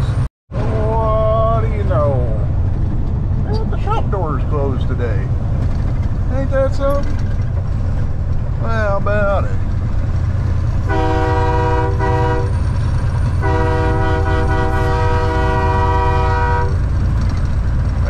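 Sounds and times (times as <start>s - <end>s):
road noise inside cab: 0.0s - 18.0s
truck engine drone: 0.0s - 18.0s
multi-tone air horn blasts: 10.8s - 12.6s, 13.4s - 16.8s.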